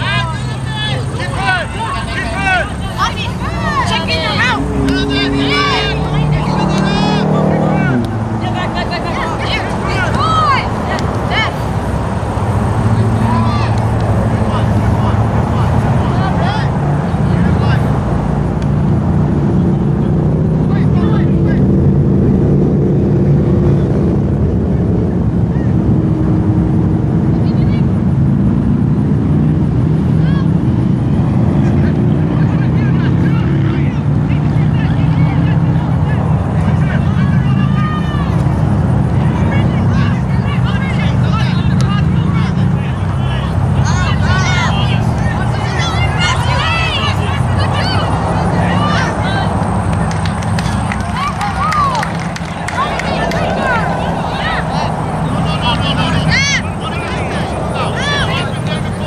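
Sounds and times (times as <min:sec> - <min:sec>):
distant players shouting: 0:00.0 - 0:21.8, 0:29.9 - 0:59.0
low motor drone: 0:00.0 - 0:59.0.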